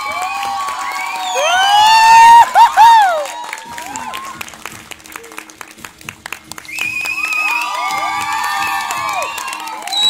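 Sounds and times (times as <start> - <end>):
audience cheering: 0.0 - 4.5, 6.7 - 10.0.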